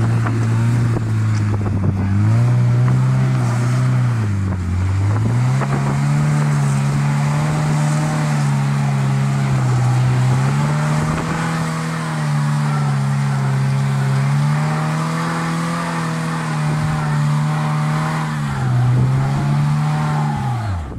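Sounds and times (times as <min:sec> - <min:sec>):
car engine revving: 0:00.0 - 0:20.9.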